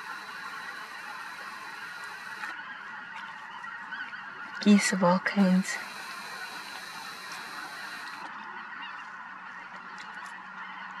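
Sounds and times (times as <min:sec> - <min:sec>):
flock of geese calling: 0:00.0 - 0:11.0.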